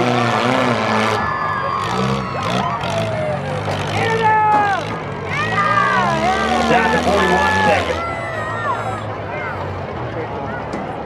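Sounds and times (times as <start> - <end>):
car engines droning: 0.0 - 11.0
people shouting: 1.2 - 9.1.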